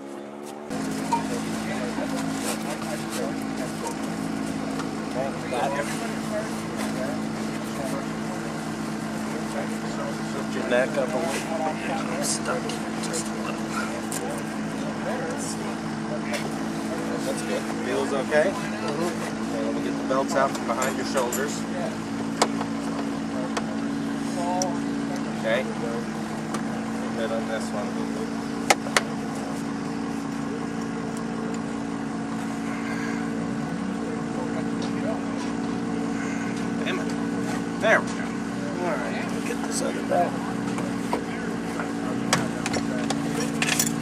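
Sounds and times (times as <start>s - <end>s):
engine idling: 0.0s - 44.0s
low mechanical hum: 0.0s - 44.0s.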